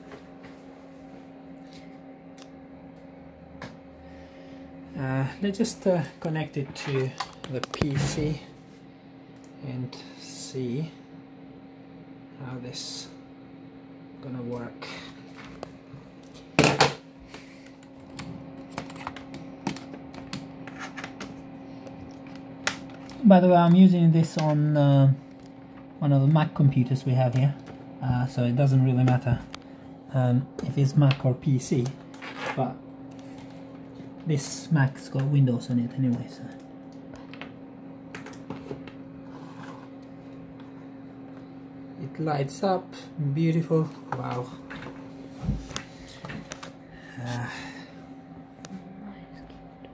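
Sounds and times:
steady low hum: 0:00.0 - 0:49.9.

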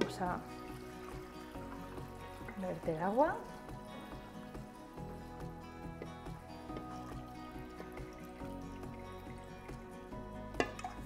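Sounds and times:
soft background music: 0:00.0 - 0:11.0
water pouring from a jug: 0:00.0 - 0:11.0.

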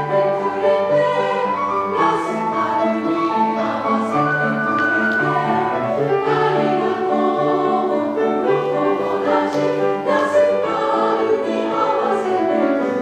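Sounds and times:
piano accompaniment: 0:00.0 - 0:13.0
women's choir singing: 0:00.0 - 0:13.0.

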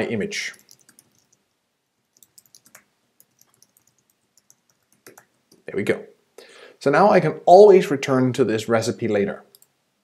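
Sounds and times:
faint keyboard typing: 0:00.4 - 0:05.7, 0:09.5 - 0:09.8.

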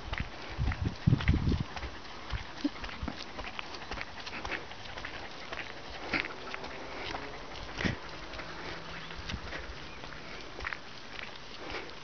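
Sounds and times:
dog paws pattering on gravel: 0:00.0 - 0:12.0
footsteps on gravel: 0:00.0 - 0:12.0.

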